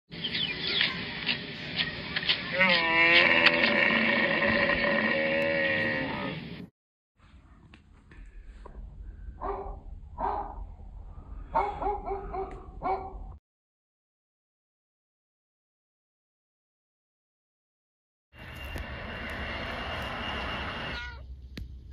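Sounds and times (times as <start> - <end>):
bus engine: 18.4 - 21.0.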